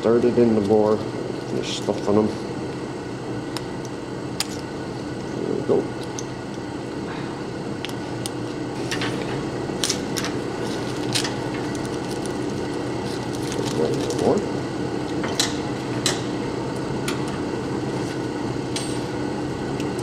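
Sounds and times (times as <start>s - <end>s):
steady background hum: 0.0s - 20.0s
plastic bags crinkling: 10.8s - 14.4s.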